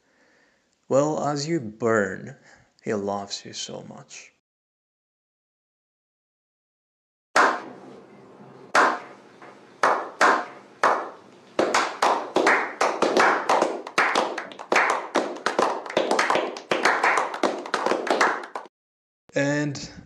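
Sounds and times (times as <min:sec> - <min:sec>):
men clapping: 0:09.8 - 0:18.7.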